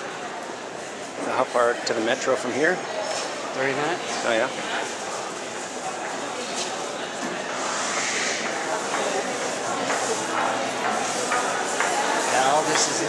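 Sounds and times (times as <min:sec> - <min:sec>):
hubbub in indoor hall: 0:00.0 - 0:13.0
people talking: 0:00.0 - 0:13.0.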